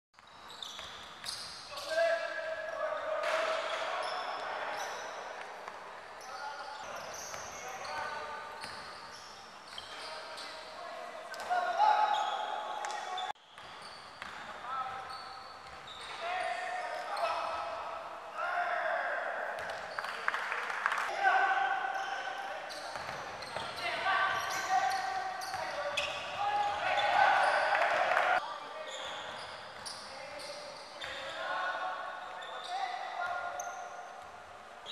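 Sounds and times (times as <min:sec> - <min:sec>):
sneakers squeaking on floor: 0:00.2 - 0:17.7, 0:21.8 - 0:34.9.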